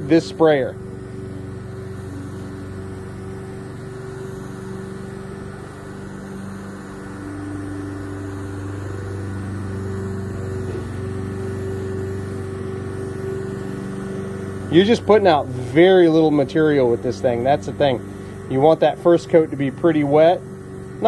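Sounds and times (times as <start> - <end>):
paint sprayer motor humming: 0.0 - 21.0.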